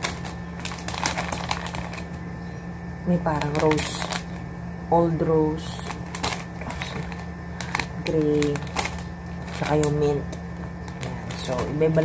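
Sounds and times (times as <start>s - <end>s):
plastic packets crinkling: 0.0s - 2.2s, 3.2s - 4.5s, 5.7s - 12.0s
steady low hum: 0.0s - 12.0s.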